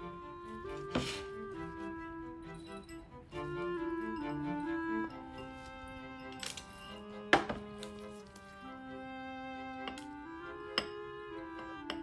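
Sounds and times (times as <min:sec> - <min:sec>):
soft music with violin: 0:00.0 - 0:12.0.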